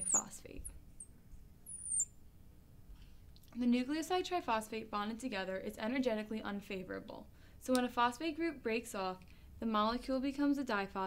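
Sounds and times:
marker squeaking on glass: 0:00.0 - 0:00.4, 0:01.0 - 0:02.2.

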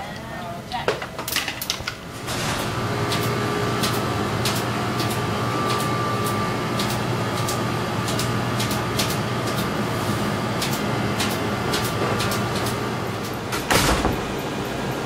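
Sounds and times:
motor and fan hum with whine: 0:00.0 - 0:15.0
sharp mechanical clicks: 0:03.1 - 0:09.7, 0:10.6 - 0:13.4.

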